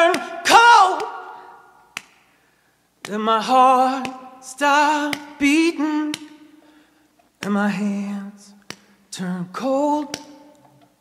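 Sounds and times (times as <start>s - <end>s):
unaccompanied singing: 0.0s - 1.4s
finger snaps: 1.9s - 2.4s, 3.0s - 3.2s, 3.9s - 4.3s, 5.0s - 7.6s, 8.5s - 9.0s, 10.0s - 10.7s.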